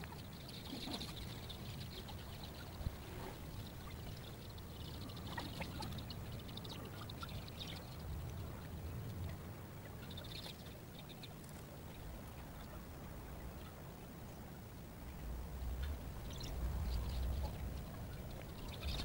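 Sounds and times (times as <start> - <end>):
birds chirping: 0.0 - 14.2, 15.7 - 19.0
low steady rumble: 0.0 - 19.0.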